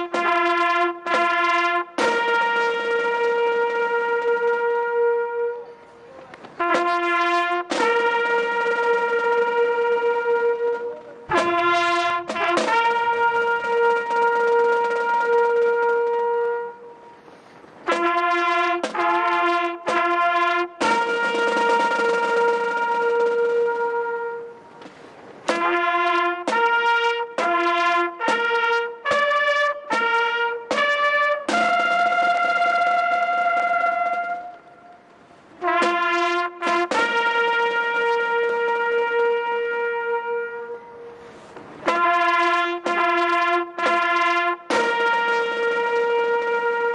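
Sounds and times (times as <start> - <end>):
solo trumpet bugle call: 0.0 - 46.9.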